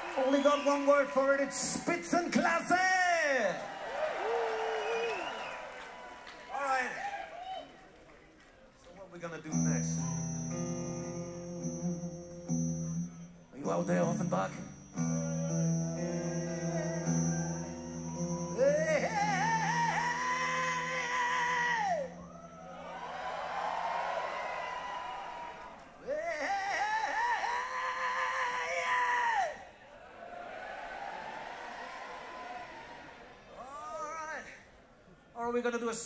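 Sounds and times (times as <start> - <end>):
sustained band chord: 9.5 - 23.4.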